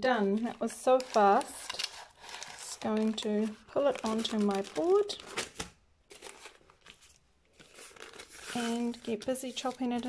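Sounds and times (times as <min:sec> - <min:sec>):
faint rustling of baking paper: 0:00.0 - 0:10.0.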